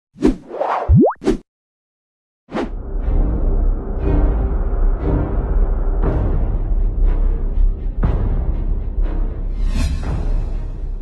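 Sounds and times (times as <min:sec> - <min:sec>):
tone sliding upward: 0:00.8 - 0:01.4.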